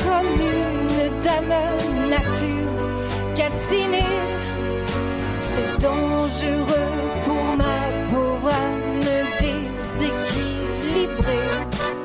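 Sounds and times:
accordion: 0.0s - 12.0s
sustained bass notes: 0.0s - 12.0s.

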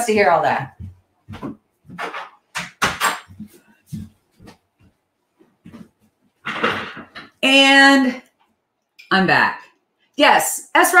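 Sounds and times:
shuffling: 0.7s - 2.4s, 3.3s - 6.7s
door knocks and bumps: 1.4s - 3.4s, 6.5s - 7.4s.

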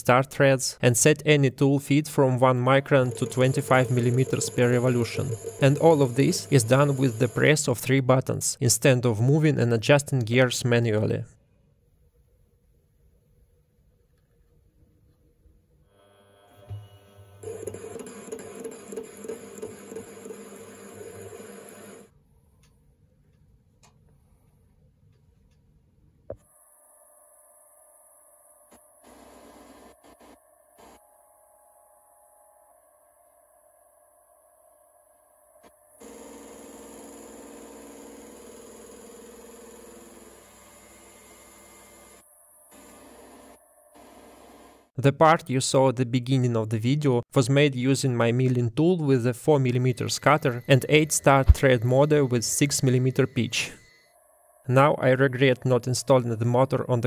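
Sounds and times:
metal lathe running: 2.9s - 7.6s, 17.1s - 22.1s, 36.0s - 42.2s, 50.0s - 54.1s
stepper motor driving carriage: 3.0s - 7.4s.

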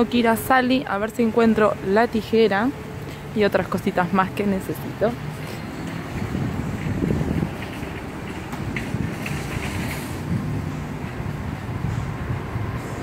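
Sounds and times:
wind buffeting microphone: 2.8s - 13.0s.

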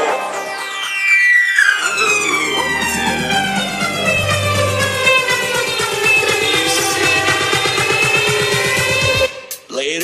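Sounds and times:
siren-like synth sweep: 1.2s - 9.3s
electronic dance music: 1.5s - 9.7s.

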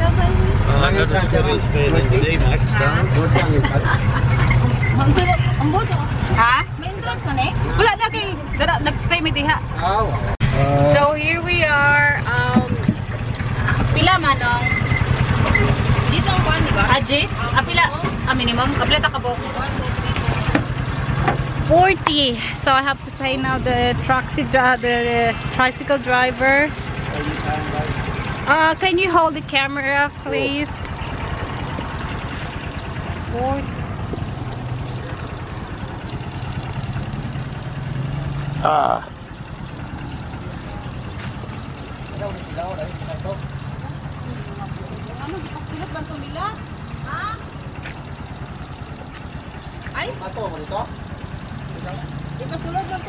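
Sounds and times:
motorcycle engine running: 25.9s - 53.0s.

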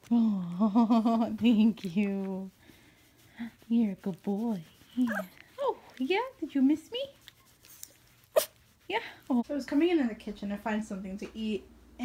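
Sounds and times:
small dog sharp sound: 5.0s - 5.4s, 7.6s - 8.6s.

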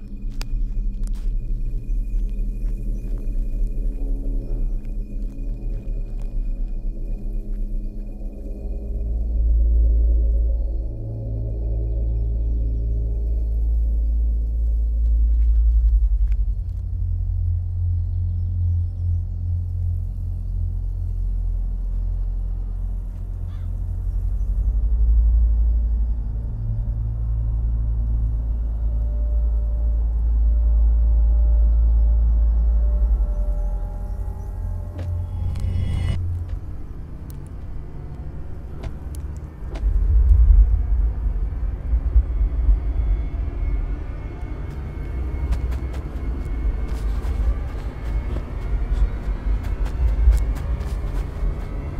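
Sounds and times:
droning ambient film score: 0.0s - 51.9s.

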